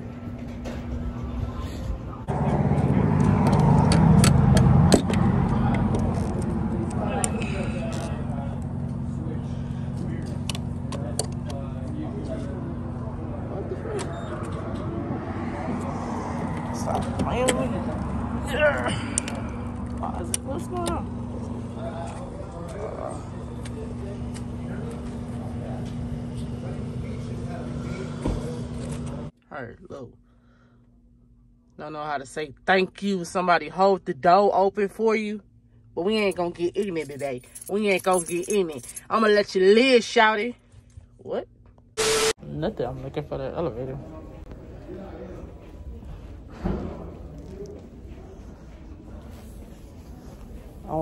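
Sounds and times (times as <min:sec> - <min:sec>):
fuel pump humming: 0:00.0 - 0:29.3.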